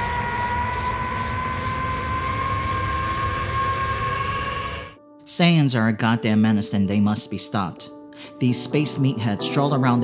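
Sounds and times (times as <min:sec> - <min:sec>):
mechanical drone with rising whine: 0:00.0 - 0:05.0.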